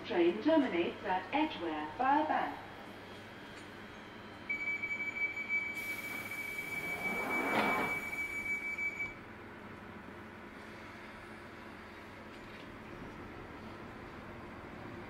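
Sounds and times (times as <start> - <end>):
train door warning tone: 4.2 - 9.2
sliding doors closing: 5.8 - 8.4.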